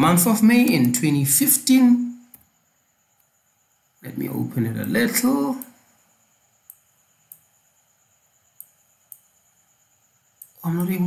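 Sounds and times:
faint steady hiss: 0.0 - 11.0
computer mouse clicks: 6.6 - 7.5, 8.6 - 9.3, 10.4 - 11.0.

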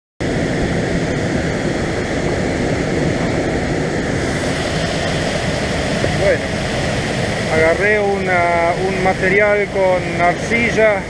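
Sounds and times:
fast turbulent river rushing: 0.2 - 11.0.

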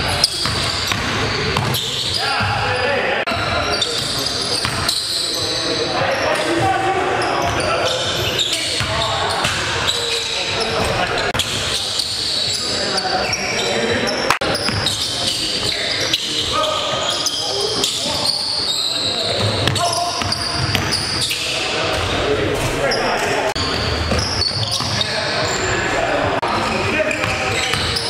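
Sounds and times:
sneakers squeaking on hardwood: 0.0 - 25.8, 26.6 - 28.0
players' voices echoing: 0.0 - 28.0
basketball bouncing: 0.2 - 1.8, 14.6 - 15.0, 19.4 - 21.0.

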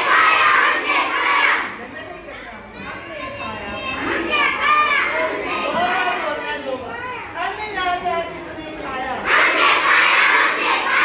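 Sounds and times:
children calling out together: 0.0 - 1.8, 2.5 - 6.2, 9.2 - 11.0.

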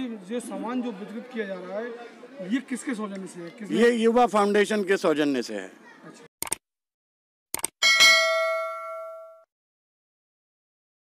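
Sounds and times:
bright bell chime: 7.8 - 9.5.

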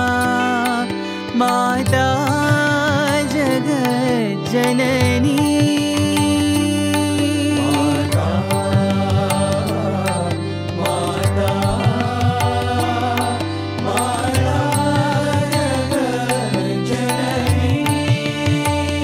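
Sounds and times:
percussion strikes: 0.0 - 19.0.

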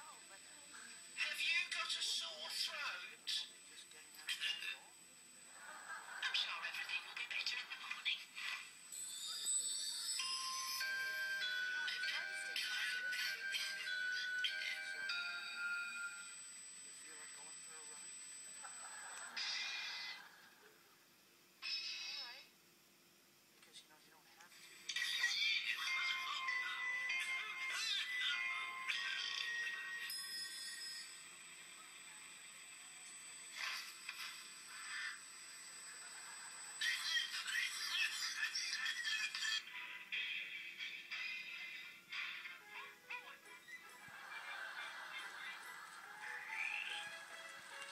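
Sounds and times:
television music with held notes: 0.0 - 47.9.

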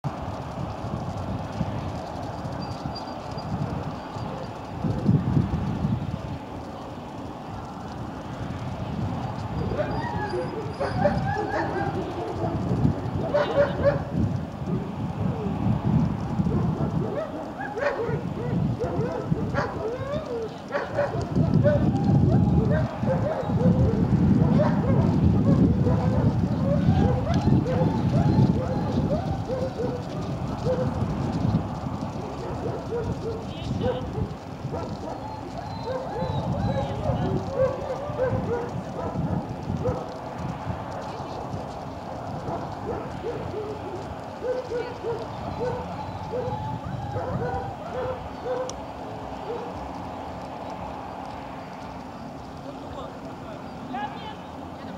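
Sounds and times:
dog barking: 9.7 - 12.6, 13.2 - 14.1, 16.6 - 21.8, 22.7 - 28.0, 32.4 - 35.2, 35.8 - 40.1, 42.5 - 43.8, 44.4 - 46.5, 47.2 - 48.7.

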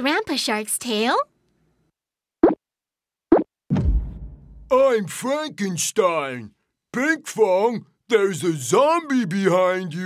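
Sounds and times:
person speaking: 4.7 - 10.0.

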